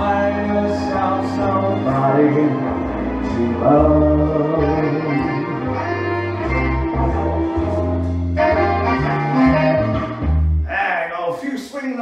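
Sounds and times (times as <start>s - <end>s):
brass backing track music: 0.0s - 10.8s
man speaking: 10.7s - 12.0s.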